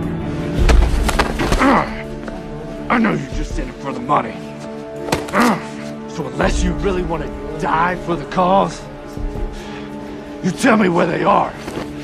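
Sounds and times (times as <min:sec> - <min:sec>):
tense music: 0:00.0 - 0:12.0.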